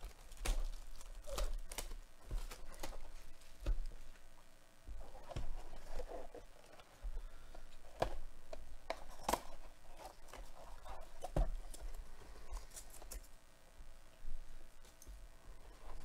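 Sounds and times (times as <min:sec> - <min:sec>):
cardboard box rustling: 0:00.0 - 0:04.3, 0:04.9 - 0:13.2.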